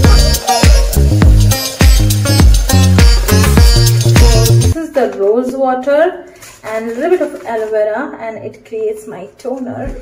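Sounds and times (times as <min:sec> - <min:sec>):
woman speaking: 0:04.8 - 0:10.0.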